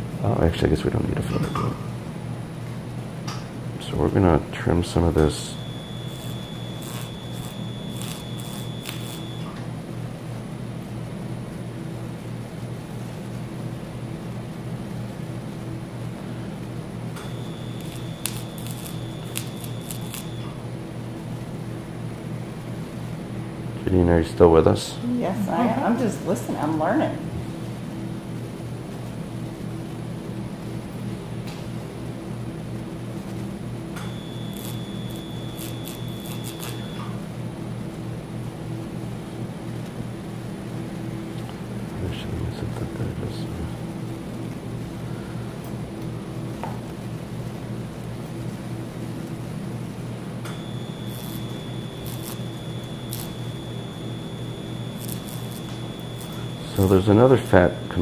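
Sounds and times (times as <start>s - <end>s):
steady low hum: 0.0s - 58.0s
high electronic activation tone: 5.1s - 9.6s, 17.2s - 20.6s, 34.0s - 37.1s, 50.4s - 58.0s.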